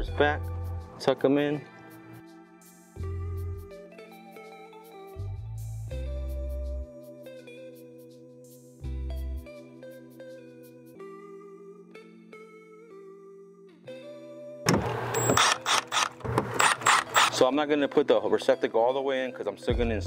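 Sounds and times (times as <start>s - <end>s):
cordless driver driving screw: 14.7s - 17.4s.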